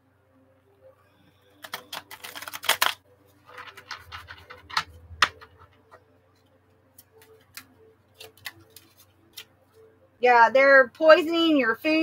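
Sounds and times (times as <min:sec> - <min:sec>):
cards being shuffled by hand: 0:01.6 - 0:06.0, 0:07.0 - 0:09.5.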